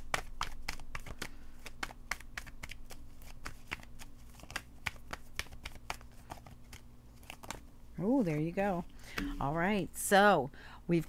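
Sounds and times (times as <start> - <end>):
cards being shuffled: 0.0 - 7.7.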